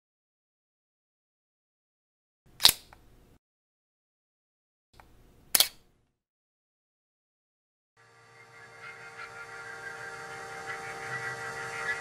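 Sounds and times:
camera shutter click: 0:05.6 - 0:05.8.

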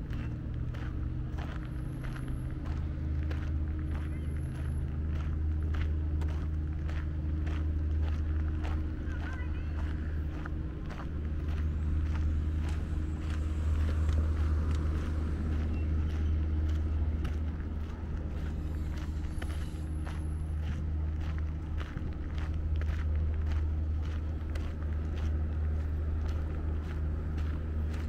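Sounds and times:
footsteps crunching on gravel: 0:00.0 - 0:28.0
steady low hum: 0:00.0 - 0:28.0.

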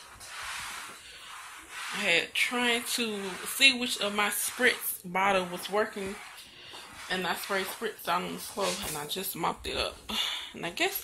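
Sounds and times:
rubbing on phone microphone: 0:00.0 - 0:09.8.

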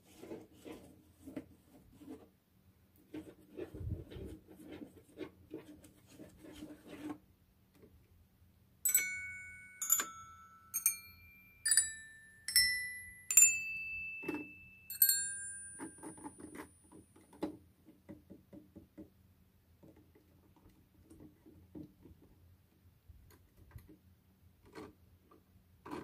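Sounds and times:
metal chime bars ringing: 0:08.8 - 0:16.4.

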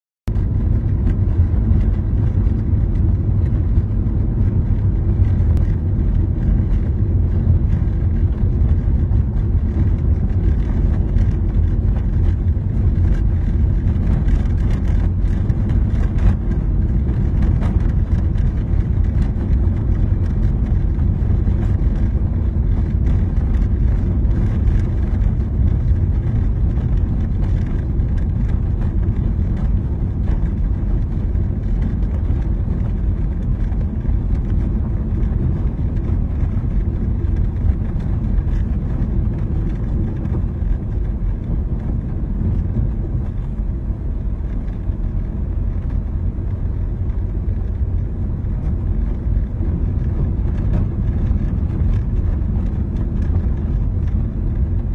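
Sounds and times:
car engine and road rumble: 0:00.2 - 0:54.9.

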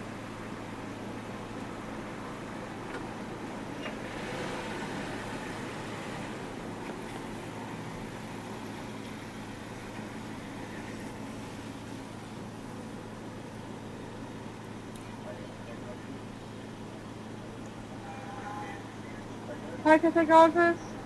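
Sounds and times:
car engine idling: 0:00.0 - 0:21.0
faint background rush: 0:00.0 - 0:21.0.

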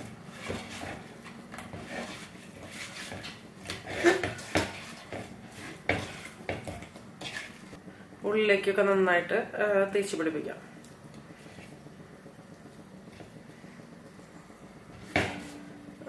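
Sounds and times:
wet squishing and scraping: 0:00.2 - 0:07.8.

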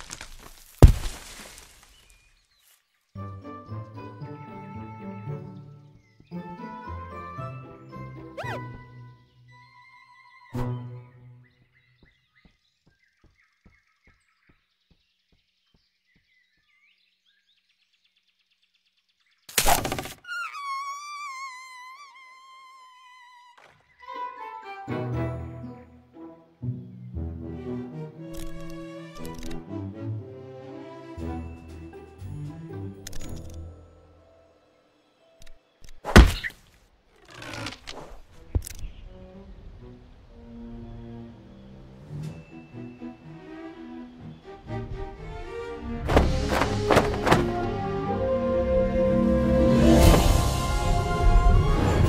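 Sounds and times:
bird chirps: 0:05.3 - 0:24.3, 0:38.4 - 0:39.2, 0:40.7 - 0:45.4
faint clicks: 0:28.3 - 0:29.6
cartoon impact thud: 0:46.1 - 0:47.7.

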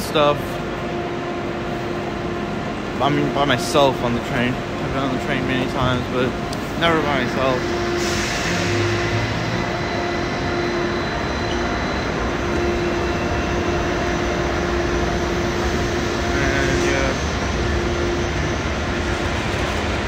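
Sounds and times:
constant rushing noise: 0:00.0 - 0:20.0
train electrical hum with tones: 0:00.0 - 0:20.0.

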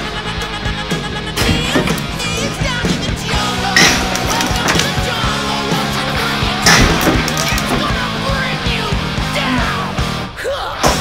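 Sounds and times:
rock music: 0:00.0 - 0:11.0
loud smashing impacts: 0:03.7 - 0:05.2, 0:06.6 - 0:08.2.

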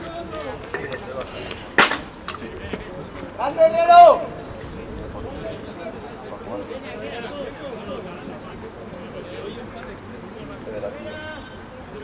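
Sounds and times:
faint voices: 0:00.0 - 0:12.0
loud sharp crack: 0:01.5 - 0:02.4.

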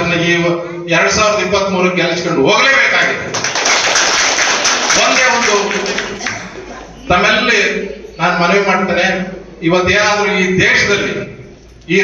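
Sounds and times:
audience clapping: 0:03.2 - 0:06.8.

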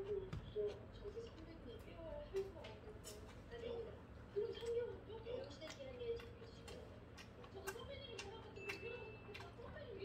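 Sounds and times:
person chewing food: 0:04.5 - 0:10.0.

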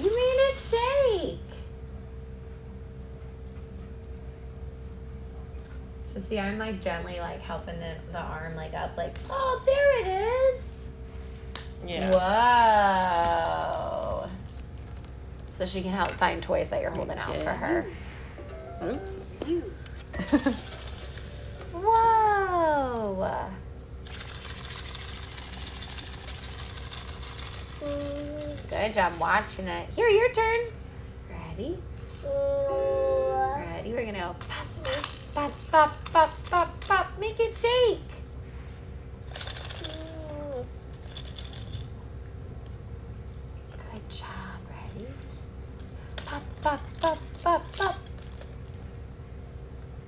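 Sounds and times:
baby toy rattling buzz: 0:00.0 - 0:01.4, 0:11.5 - 0:14.7, 0:18.8 - 0:22.1, 0:24.0 - 0:30.6, 0:31.9 - 0:32.6, 0:33.7 - 0:37.2, 0:39.2 - 0:42.0, 0:45.8 - 0:48.8.

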